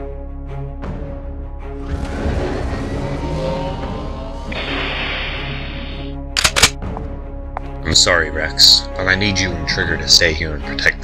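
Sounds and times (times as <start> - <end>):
soundtrack music: 0.0 - 11.0
sharp cracks: 6.4 - 6.8.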